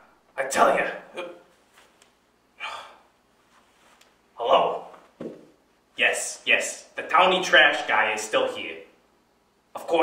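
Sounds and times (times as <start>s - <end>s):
man exhaling breathily: 2.6s - 3.1s
man speaking a syllable: 4.4s - 5.0s.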